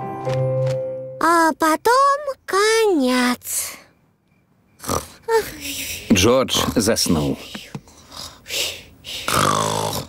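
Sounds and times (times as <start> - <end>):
cartoon piglet snoring: 4.8 - 5.5, 9.2 - 10.0.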